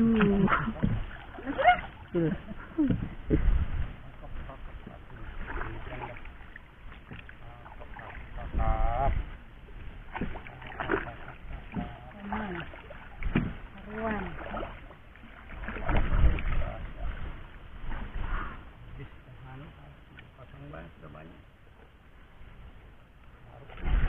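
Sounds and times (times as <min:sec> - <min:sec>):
cast net hauled from water: 0:00.0 - 0:21.0, 0:21.7 - 0:24.0
knocks from wooden boat: 0:00.8 - 0:01.2, 0:02.8 - 0:03.5, 0:13.2 - 0:13.6.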